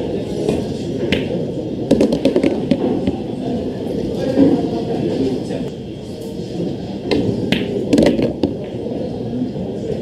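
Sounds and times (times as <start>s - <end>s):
low background murmur: 0.0s - 10.0s
cue striking ball: 1.1s - 3.3s, 7.1s - 8.8s
billiard balls clicking: 1.9s - 3.2s, 7.5s - 8.6s.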